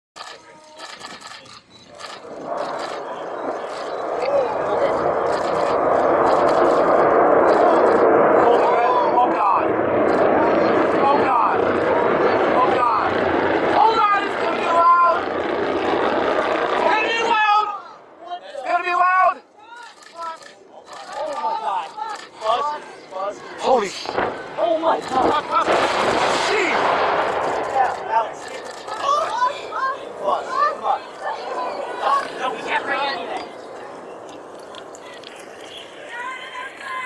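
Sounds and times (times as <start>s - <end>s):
distant rocket roar and explosion: 0.9s - 18.2s, 22.1s - 37.0s
people shouting: 35.0s - 37.0s.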